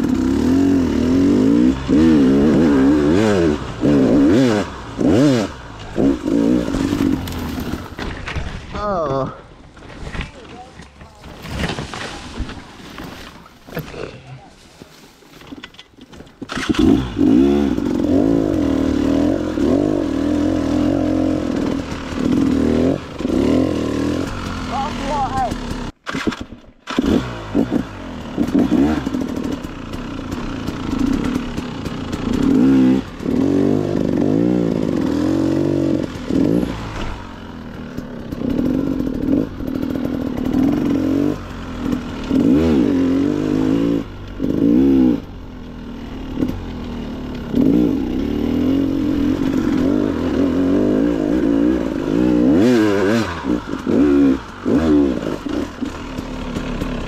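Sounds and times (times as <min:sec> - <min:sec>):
dirt bike engine revving: 0:00.0 - 0:08.3, 0:16.5 - 0:57.0.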